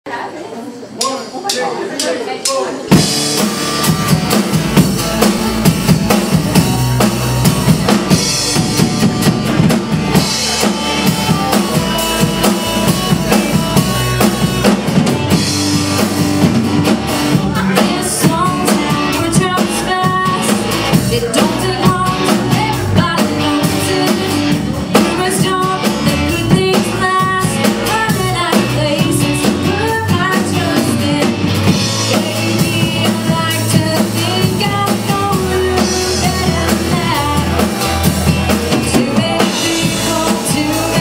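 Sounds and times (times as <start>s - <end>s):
drum kit beat: 1.0s - 41.0s
bass guitar: 2.8s - 41.0s
electric guitars: 2.8s - 41.0s.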